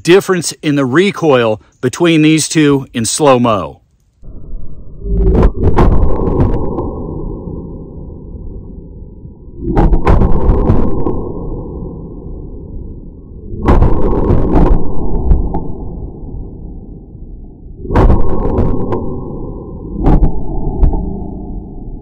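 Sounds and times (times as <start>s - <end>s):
slow-motion gunshot booms: 5.2s - 7.0s, 9.6s - 11.8s, 13.6s - 15.8s, 17.8s - 21.2s.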